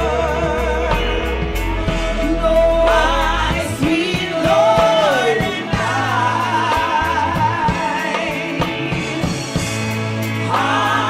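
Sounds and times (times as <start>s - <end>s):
bass: 0.0s - 11.0s
drums: 0.0s - 11.0s
electric guitar: 0.0s - 11.0s
woman singing gospel: 0.0s - 11.0s.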